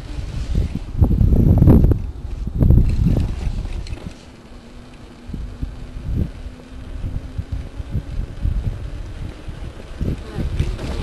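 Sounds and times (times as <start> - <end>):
faint steady hum: 0.0 - 11.0
wind buffeting microphone: 0.0 - 11.0.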